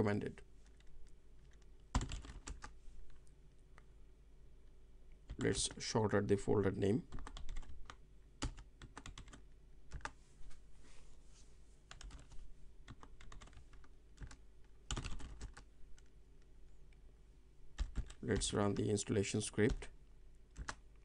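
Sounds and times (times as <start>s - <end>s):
keyboard typing: 0.6s - 3.2s, 7.1s - 10.2s, 11.9s - 16.1s, 17.8s - 18.9s, 20.5s - 21.0s.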